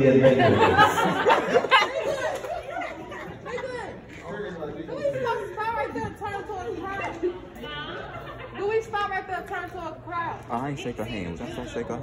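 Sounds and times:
distant chatter of people: 0.0s - 12.0s.

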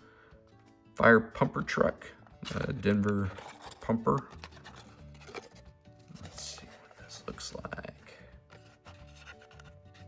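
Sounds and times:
quiet background music: 0.0s - 10.0s
cardboard scraping: 2.4s - 7.7s, 8.5s - 10.0s.

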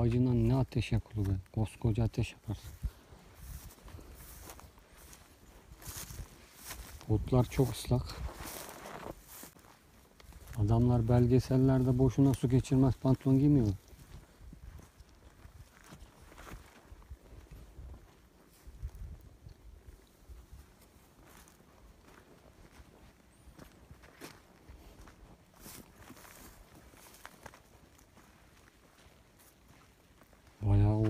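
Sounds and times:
footsteps on wet grass and stones: 0.0s - 31.0s.

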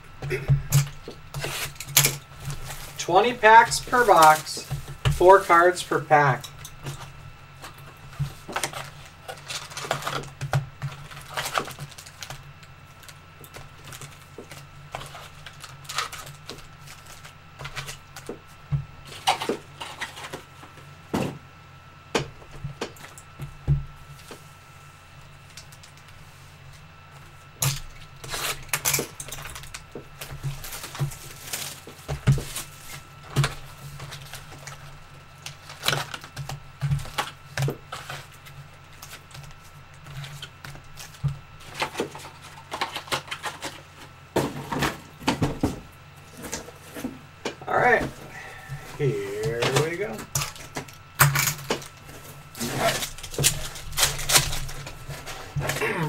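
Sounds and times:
faint steady hum: 0.0s - 56.0s
card packs crinkling and clicking: 0.1s - 21.1s, 25.2s - 56.0s.

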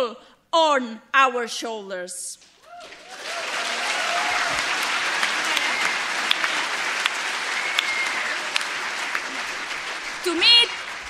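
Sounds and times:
audience applauding: 2.6s - 11.0s.

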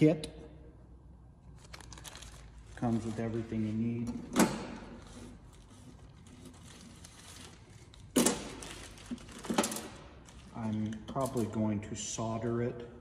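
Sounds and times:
plastic packaging crinkling: 1.6s - 3.6s, 5.4s - 11.0s
sharp plastic rustle: 1.6s - 3.9s, 4.9s - 11.5s.

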